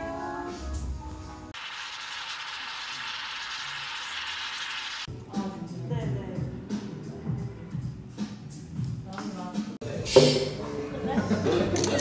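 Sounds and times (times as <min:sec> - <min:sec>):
music: 0:00.0 - 0:01.6, 0:05.1 - 0:12.0
moka pot hissing and sputtering: 0:01.6 - 0:05.1.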